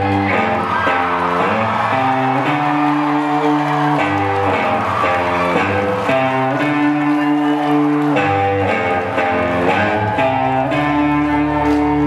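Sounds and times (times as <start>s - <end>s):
live rock band with guitar: 0.0s - 12.0s.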